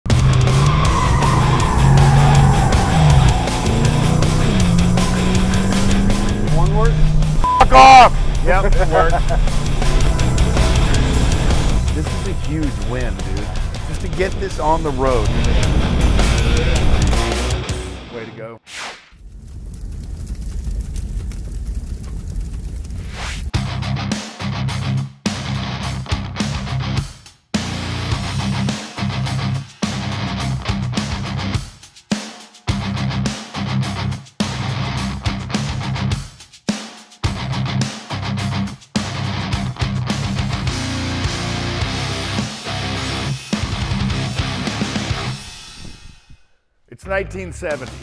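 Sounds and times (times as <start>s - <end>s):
car engine: 0.1s - 18.1s
music: 0.1s - 18.6s, 23.5s - 48.0s.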